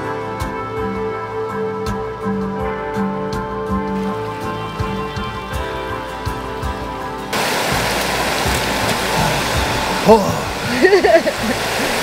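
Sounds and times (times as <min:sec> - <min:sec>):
gentle background music: 0:00.0 - 0:12.0
stream water rushing: 0:03.9 - 0:12.0.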